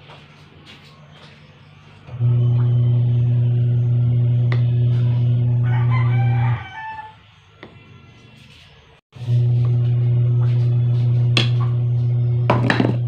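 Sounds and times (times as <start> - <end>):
loud low hum: 2.1 - 6.6, 9.2 - 13.0
rooster crowing: 5.2 - 7.3.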